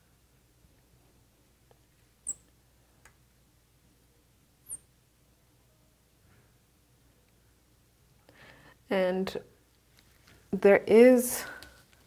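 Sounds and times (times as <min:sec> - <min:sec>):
marker squeaking on glass: 0:04.6 - 0:04.9.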